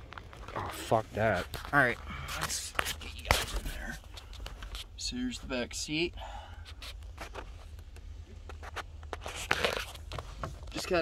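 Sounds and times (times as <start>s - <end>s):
camera brushing against upholstery: 0.8s - 5.6s, 6.7s - 11.0s.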